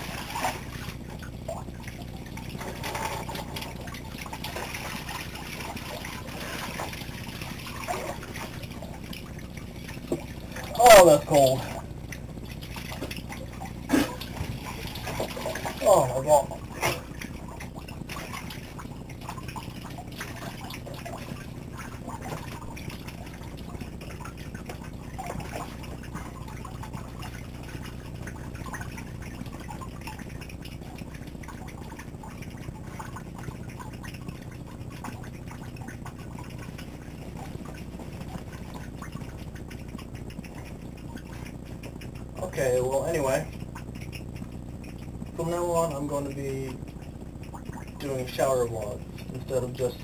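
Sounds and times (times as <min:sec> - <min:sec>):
low steady hum: 0:00.0 - 0:50.0.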